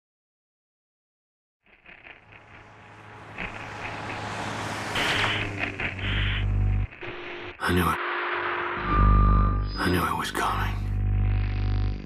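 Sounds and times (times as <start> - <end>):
rushing surge: 1.9 - 9.6
low rumbling noise: 2.0 - 9.8.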